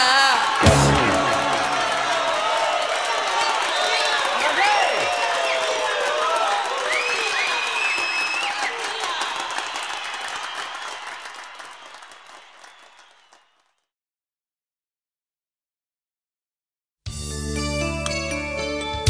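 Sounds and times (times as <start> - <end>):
shouts and whoops: 0.0 - 11.0
crowd applauding and cheering: 0.0 - 13.8.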